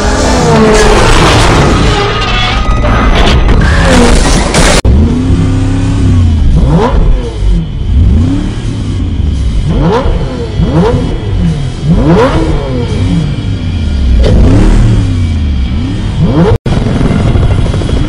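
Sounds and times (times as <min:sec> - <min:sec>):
engine idle drone: 0:00.0 - 0:18.0
sports car engines revving: 0:04.8 - 0:18.0.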